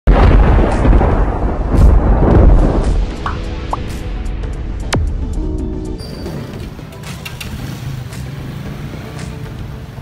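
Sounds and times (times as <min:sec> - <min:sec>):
background music: 0:00.1 - 0:10.0
motorcycle engines: 0:06.0 - 0:10.0
passing road vehicles: 0:06.1 - 0:10.0.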